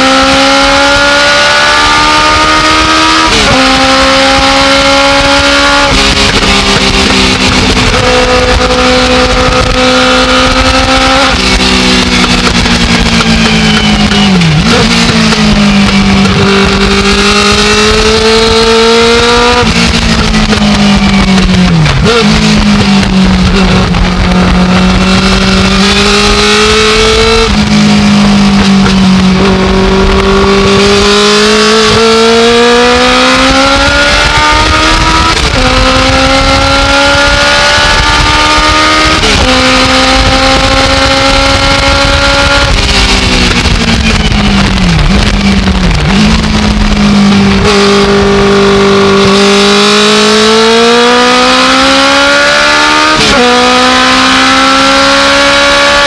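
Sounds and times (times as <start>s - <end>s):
race car engine at full throttle: 0.0s - 56.0s
wind and road noise: 0.0s - 56.0s
engine throttle blips: 1.8s - 56.0s.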